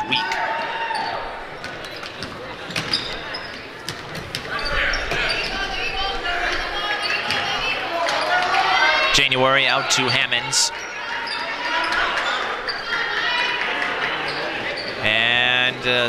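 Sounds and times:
voices in a gym: 0.0s - 16.0s.

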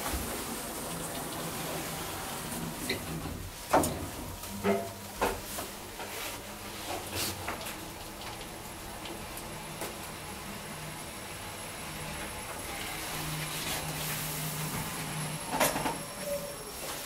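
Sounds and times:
elevator hum and ride noise: 0.0s - 17.0s.

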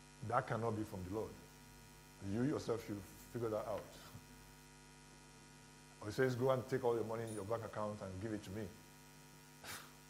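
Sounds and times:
faint mains hum: 0.0s - 10.0s.

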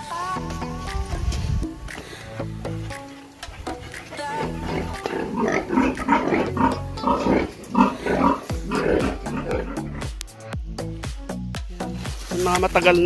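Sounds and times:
music with a steady beat: 0.0s - 13.0s
pigs calling: 3.1s - 10.2s.

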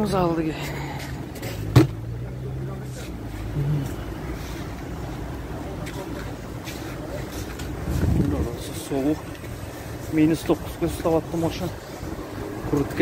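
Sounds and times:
low rumble of vehicle noise: 0.0s - 13.0s.

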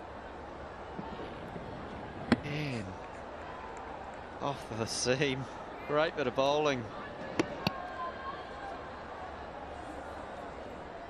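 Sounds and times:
crowd hum: 0.0s - 11.0s
cricket ball hitting bat: 2.2s - 2.5s.

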